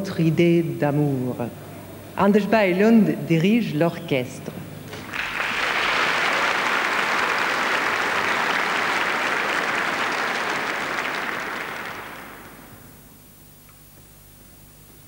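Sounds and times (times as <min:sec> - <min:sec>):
large audience applauding: 0:04.9 - 0:13.0.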